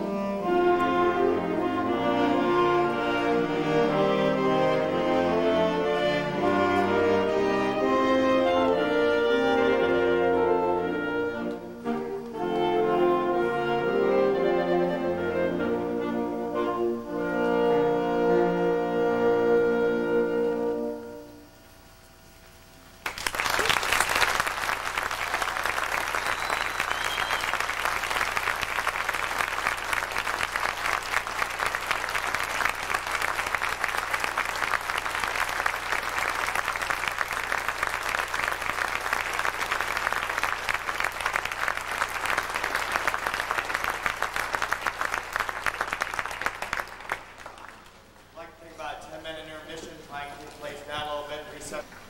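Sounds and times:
audience applauding: 23.0s - 48.6s.

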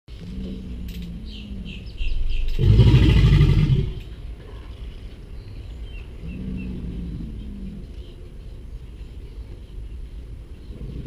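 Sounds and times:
alligator deep bellow: 0.1s - 4.8s
alligator low rumble: 0.1s - 11.0s.

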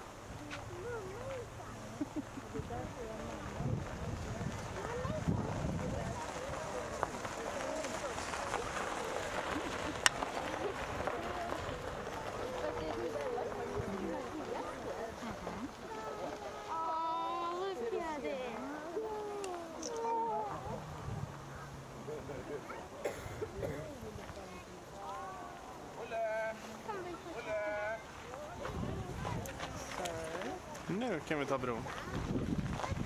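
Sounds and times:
people chattering: 0.0s - 33.0s
children's voices: 0.4s - 2.1s, 4.7s - 7.0s, 9.4s - 21.8s, 26.8s - 30.0s, 31.9s - 33.0s
wind rumbling on microphone: 2.5s - 15.8s, 20.5s - 21.6s, 28.5s - 33.0s.

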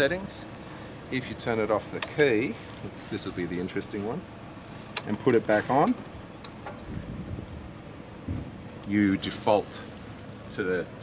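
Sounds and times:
low steady background hum: 0.0s - 11.0s.

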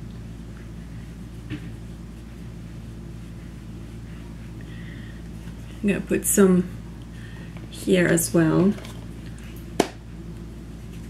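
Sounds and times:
low-pitched hum: 0.0s - 11.0s.

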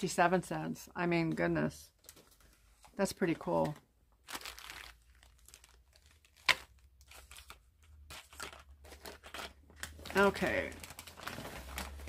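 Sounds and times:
packaging crinkling and rustling: 2.0s - 12.0s.

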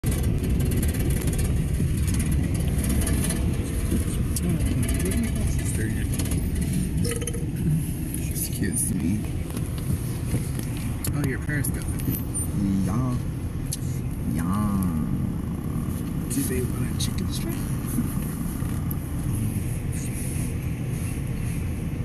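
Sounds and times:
car cabin road and engine rumble: 0.0s - 22.0s.

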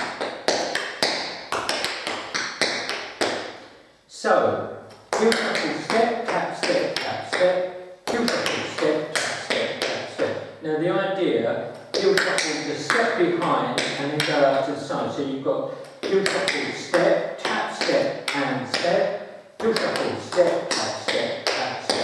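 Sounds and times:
tap shoes on tiled floor: 0.0s - 3.6s.

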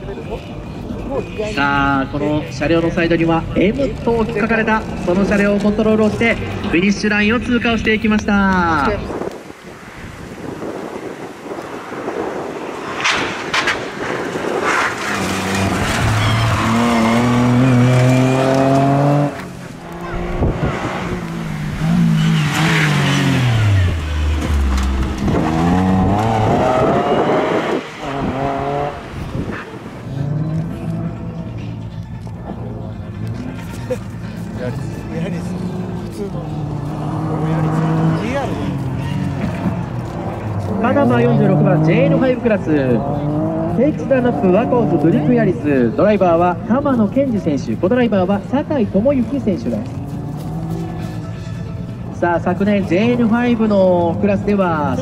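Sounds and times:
rally car engine revving: 8.8s - 31.8s, 33.0s - 47.2s, 48.2s - 55.0s.

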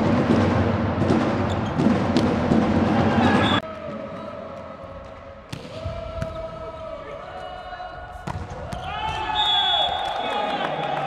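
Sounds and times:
crowd voices and shouting: 0.1s - 11.0s.

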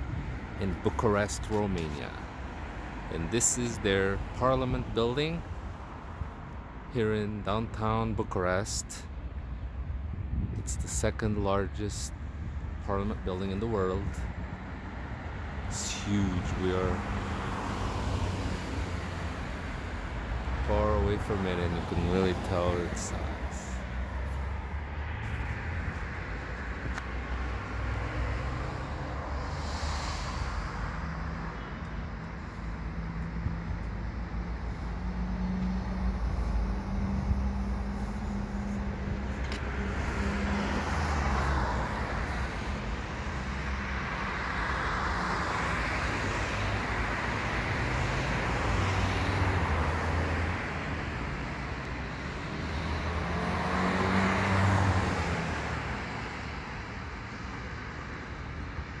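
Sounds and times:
cars passing: 0.0s - 59.0s.

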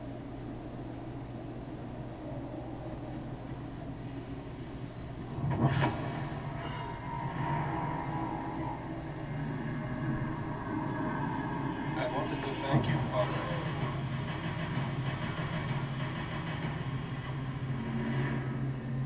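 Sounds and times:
low rumbling drone: 0.0s - 19.0s
loud hit: 12.6s - 18.6s.

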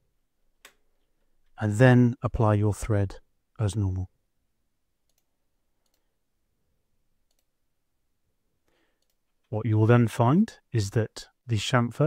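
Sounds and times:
faint computer mouse clicks: 5.1s - 6.1s, 7.3s - 7.5s, 8.7s - 9.3s.

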